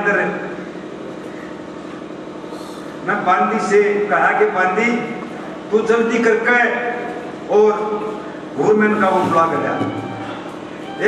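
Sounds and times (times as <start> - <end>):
steady background hum: 0.0 - 11.0.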